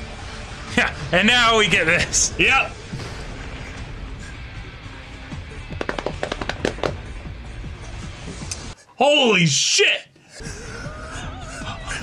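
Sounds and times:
background music: 0:00.0 - 0:12.0
sharp cracks and impacts: 0:02.7 - 0:07.3.

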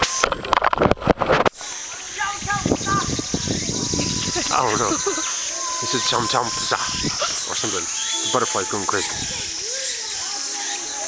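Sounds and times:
high drone of insects: 0:00.0 - 0:11.0
short insect chirps: 0:01.3 - 0:11.0.

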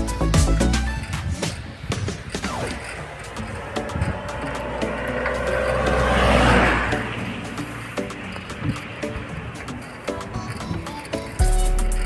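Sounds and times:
bicycle creaking and clicking: 0:00.0 - 0:12.0.

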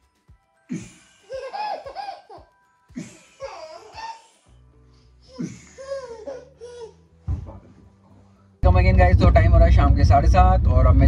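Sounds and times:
baby giggling: 0:01.2 - 0:04.4.

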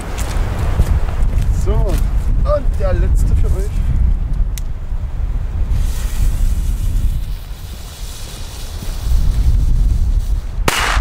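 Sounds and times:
wind rumbling on microphone: 0:00.0 - 0:11.0
firecracker fuse hissing: 0:05.7 - 0:11.0
firecracker bang: 0:10.6 - 0:11.0.

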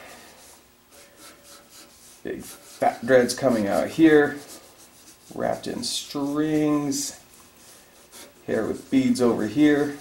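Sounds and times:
marker scratching on paper: 0:00.4 - 0:10.0.

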